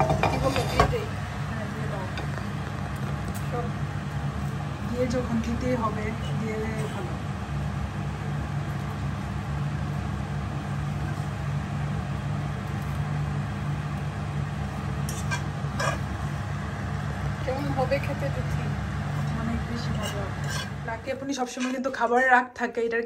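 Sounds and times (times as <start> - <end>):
fork scraping frying pan: 0.0 - 1.1, 15.0 - 16.2, 19.8 - 20.8
low mechanical hum: 0.0 - 23.0.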